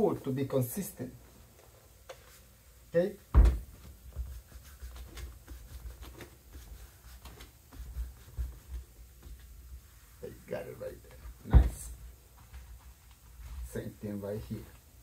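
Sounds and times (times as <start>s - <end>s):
loud thump on workbench: 3.3s - 3.7s.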